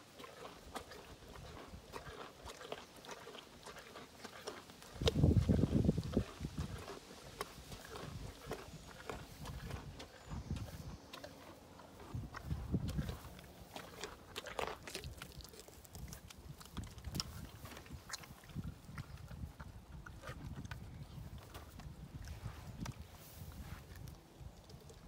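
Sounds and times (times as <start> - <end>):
pony crunching carrots: 0.1 - 25.0.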